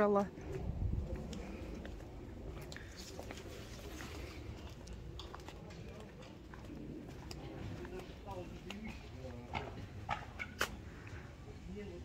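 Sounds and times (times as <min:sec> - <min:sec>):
footsteps outdoors: 0:00.0 - 0:12.0.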